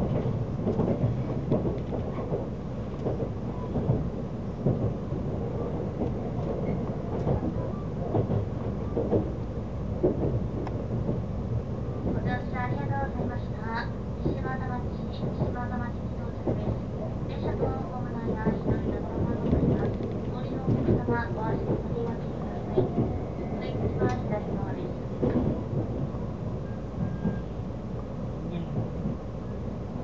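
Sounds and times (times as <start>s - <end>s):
train wheels rumbling on rail: 0.0s - 30.0s.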